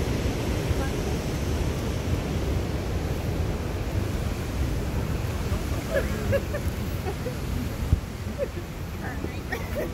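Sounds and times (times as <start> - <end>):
rushing noise with low rumble: 0.0 - 9.9.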